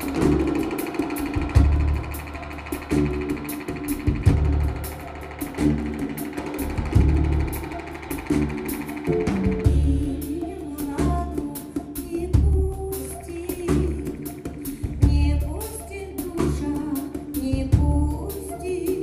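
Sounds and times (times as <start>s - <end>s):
drum kit cymbal strokes: 0.0s - 12.1s
live band instrumental: 0.0s - 19.0s.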